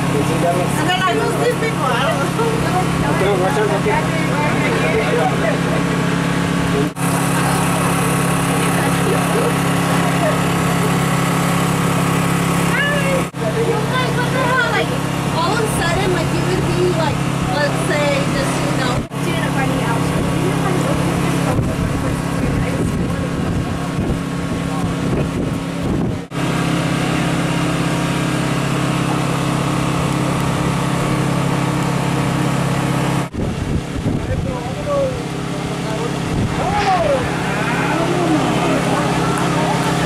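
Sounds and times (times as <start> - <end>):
people talking: 0.0 - 6.1, 6.7 - 11.1, 12.7 - 25.2, 34.2 - 40.0
low engine-like hum: 0.0 - 40.0.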